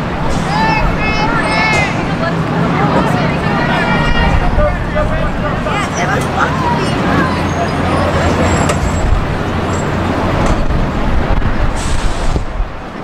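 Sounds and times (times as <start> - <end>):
steady low rumble: 0.0 - 7.1, 8.2 - 13.0
distant shouts and calls: 0.0 - 9.0.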